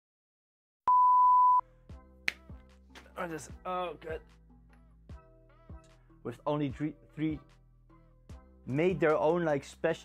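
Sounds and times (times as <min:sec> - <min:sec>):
test-tone beep: 0:00.9 - 0:01.6.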